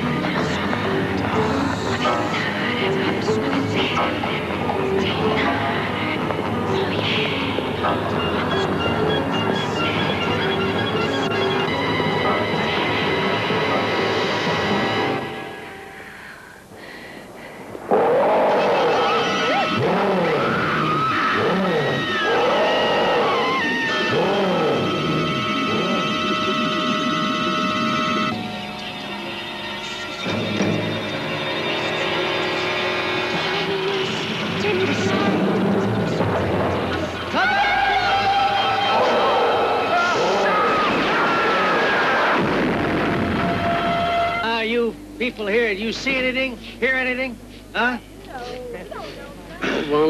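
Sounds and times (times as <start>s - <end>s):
eerie wailing tones: 17.9s - 34.0s, 37.3s - 44.6s
explosions and crashing: 42.2s - 44.0s.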